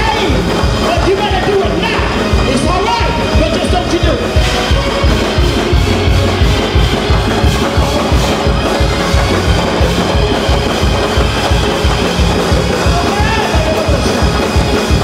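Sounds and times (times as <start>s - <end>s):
church band playing gospel music: 0.0s - 15.0s
drums fast steady beat: 0.0s - 15.0s.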